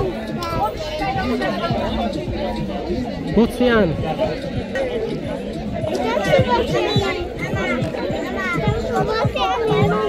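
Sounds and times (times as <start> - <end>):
many voices talking and calling: 0.0 - 10.0.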